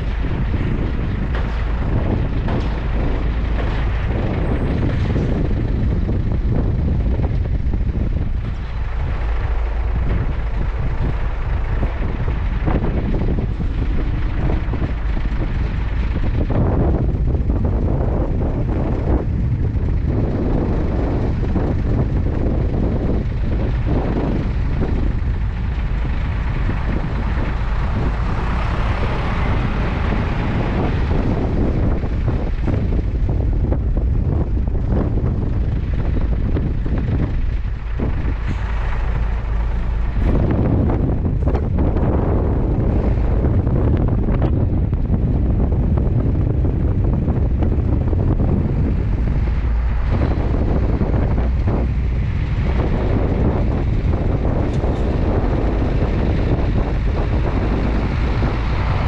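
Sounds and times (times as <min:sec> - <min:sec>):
truck low rumble: 0:00.0 - 0:59.0
wind buffeting microphone: 0:00.0 - 0:59.0.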